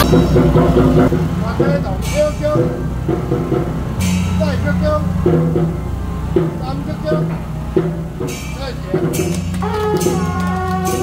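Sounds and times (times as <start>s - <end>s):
people's voices: 0.0s - 11.0s
vehicle engine rumbling: 0.0s - 11.0s.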